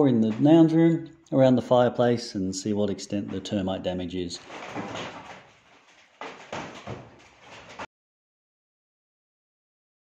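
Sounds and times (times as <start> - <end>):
floorboards knocking and creaking: 0.0 - 0.8, 3.0 - 7.9.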